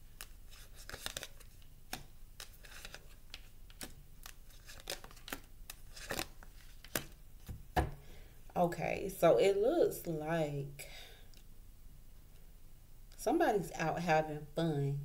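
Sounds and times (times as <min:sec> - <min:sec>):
cards snapping and slapping on table: 0:00.9 - 0:08.0.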